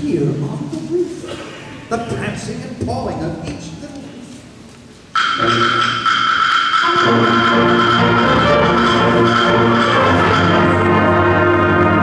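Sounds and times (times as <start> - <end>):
concert band playing: 5.2 - 12.0.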